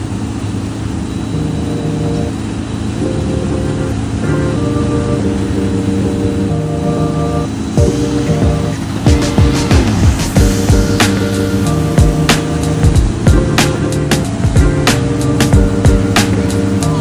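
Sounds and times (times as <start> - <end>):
music of held chords: 0.0 - 17.0
music beat: 1.4 - 17.0.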